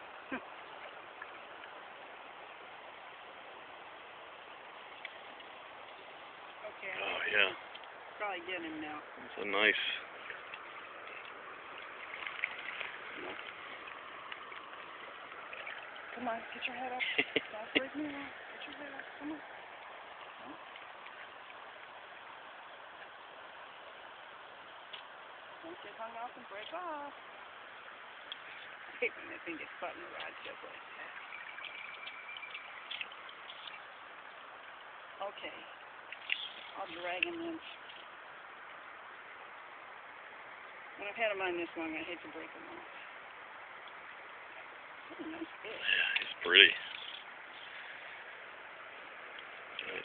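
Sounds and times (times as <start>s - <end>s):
small splashes: 0.0s - 41.1s
river flowing over gravel: 0.0s - 50.0s
faint clicks: 31.4s - 33.8s.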